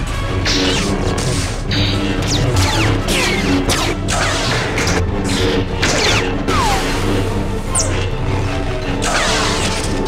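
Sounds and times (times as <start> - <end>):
orchestral music score: 0.0 - 10.0
lightsaber blades clashing: 0.4 - 6.8, 9.0 - 10.0.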